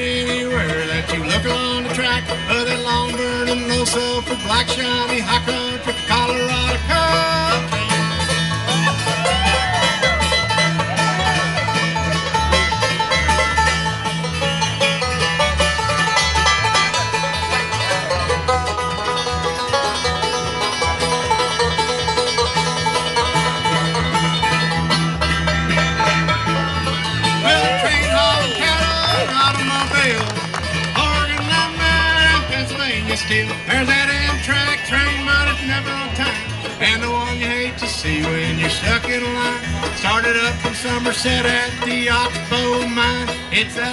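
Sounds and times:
acoustic guitar: 0.0 - 43.9
banjo rolls: 0.0 - 43.9
sliding lead notes: 0.0 - 43.9
upright bass: 0.0 - 43.9.

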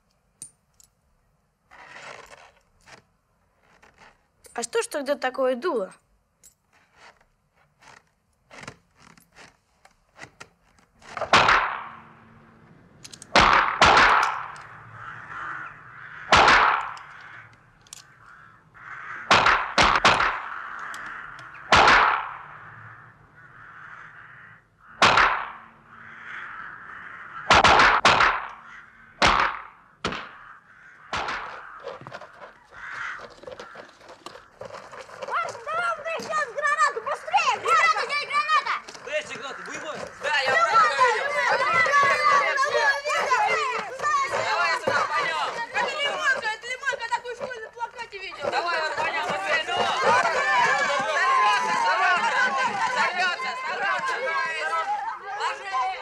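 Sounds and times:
rifle shots echoing: 13.3 - 14.6, 16.3 - 17.0, 19.3 - 20.6, 21.7 - 22.5, 27.5 - 28.6, 31.1 - 31.6
faint clicks: 20.7 - 21.6.

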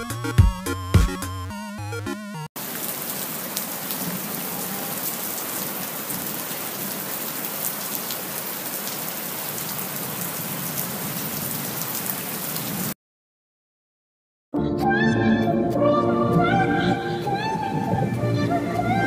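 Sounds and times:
steady rain-like hiss: 2.6 - 13.0, 17.1 - 19.0.

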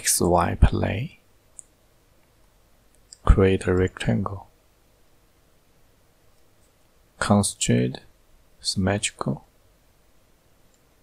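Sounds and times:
computer mouse click: 10.7 - 10.9.

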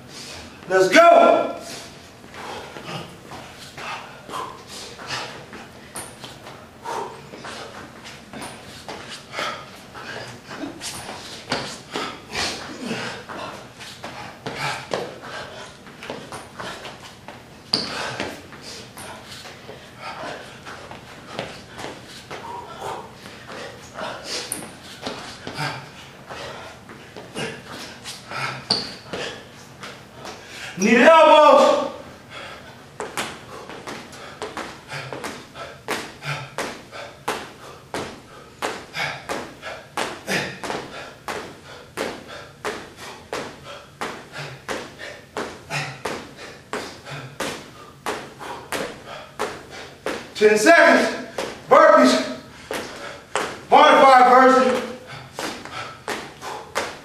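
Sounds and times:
person breathing: 6.8 - 7.8, 21.3 - 29.5, 32.1 - 32.8, 33.4 - 50.0, 52.4 - 53.4, 54.9 - 57.0
feet and hands thumping on floor: 33.0 - 50.4, 54.7 - 57.0.

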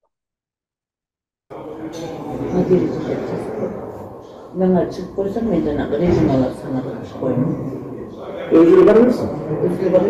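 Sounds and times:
heavy background noise: 1.5 - 10.0.

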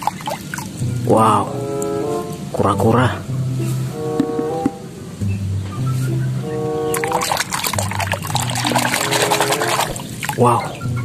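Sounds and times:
water sloshing and splashing: 0.0 - 0.9, 6.9 - 10.8
background music with bass: 0.7 - 9.7, 10.4 - 11.0.

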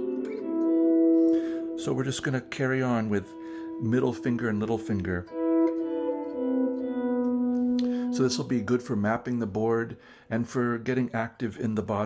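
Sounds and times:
electric guitar notes ringing: 0.0 - 10.2.

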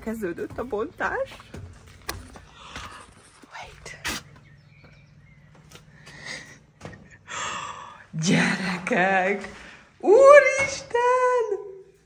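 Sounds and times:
person gasping: 7.2 - 8.1.

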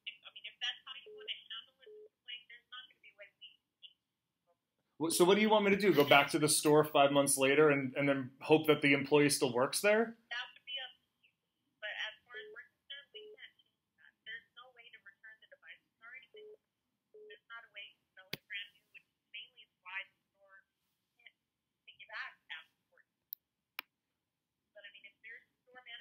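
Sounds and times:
woman speaking over phone: 0.0 - 4.0, 10.2 - 16.6, 17.2 - 23.1, 24.8 - 26.0.

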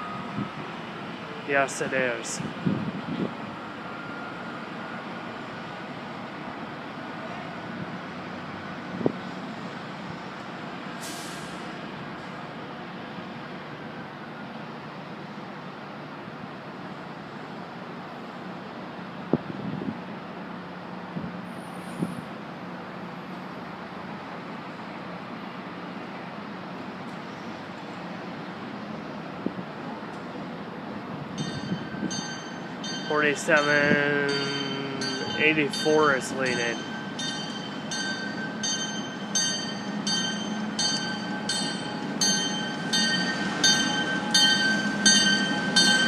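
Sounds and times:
distant diesel locomotives rumbling: 0.0 - 46.0.

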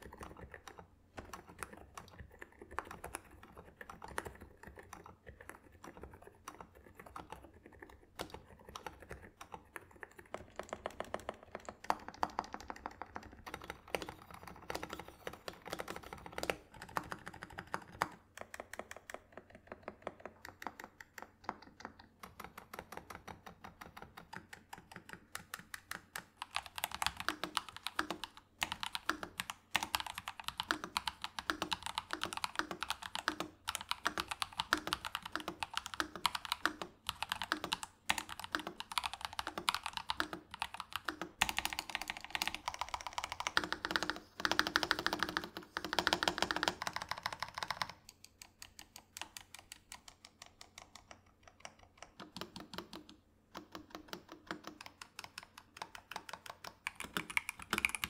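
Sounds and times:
typing on mechanical keyboard: 0.0 - 58.0.

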